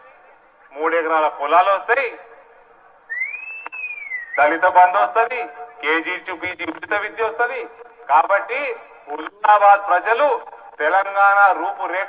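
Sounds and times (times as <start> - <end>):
high whistling tone rising: 3.1 - 4.4.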